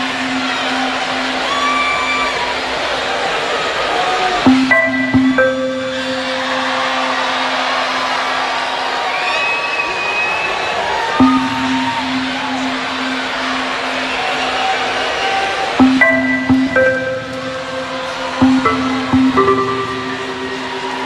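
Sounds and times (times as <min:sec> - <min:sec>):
electronic dance music: 0:00.0 - 0:03.1, 0:04.2 - 0:08.6, 0:11.2 - 0:21.0.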